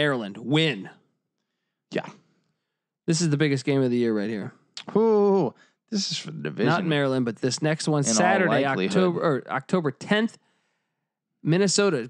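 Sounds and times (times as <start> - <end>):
person saying yeah: 6.6 - 7.0, 8.0 - 9.3.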